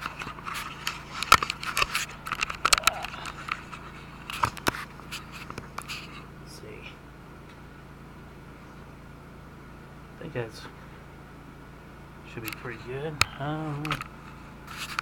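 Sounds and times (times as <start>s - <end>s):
camera handling knocks and scrapes: 0.0s - 6.2s
steady low hum: 0.0s - 15.0s.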